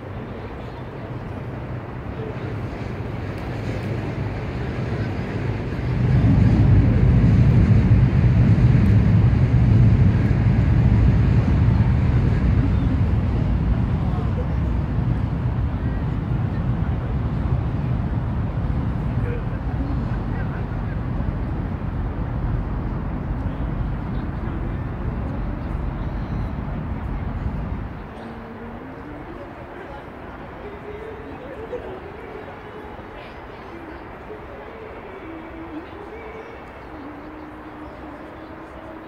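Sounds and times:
city ambience: 0.0s - 39.0s
low rumble: 5.2s - 28.1s.

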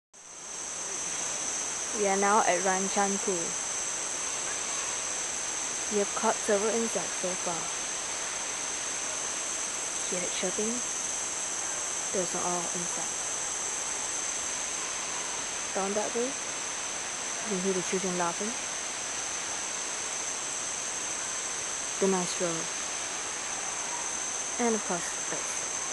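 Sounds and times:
insects chorus droning: 0.2s - 25.9s.

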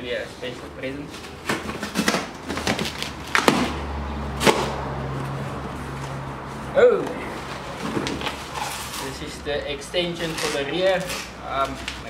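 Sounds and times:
packing tape scraping and crackling: 1.1s - 3.8s, 7.3s - 9.4s, 10.0s - 12.0s.

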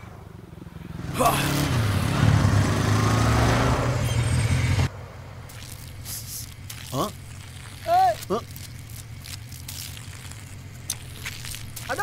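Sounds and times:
person exclaiming: 7.8s - 8.5s.

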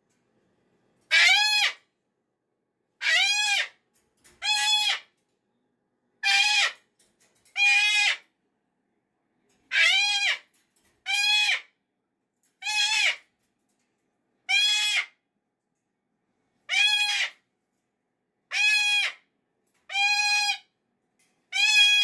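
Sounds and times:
cockatoo screaming: 1.1s - 1.8s, 3.0s - 3.8s, 4.4s - 5.1s, 6.2s - 6.8s, 7.6s - 8.2s, 9.7s - 11.7s, 12.6s - 13.2s, 14.5s - 15.2s, 16.7s - 17.4s, 18.5s - 19.2s, 19.9s - 20.7s, 21.5s - 22.0s.

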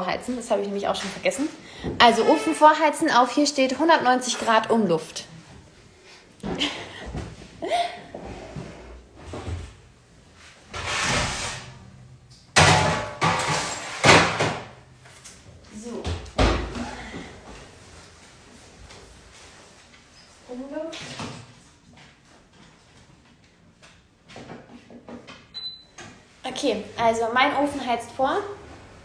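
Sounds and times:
oven door banging: 12.6s - 14.7s.

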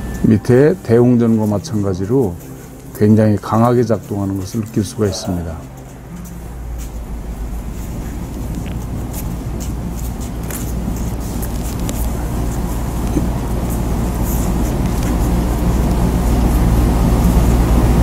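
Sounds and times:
low rumbling noise: 4.9s - 18.0s.

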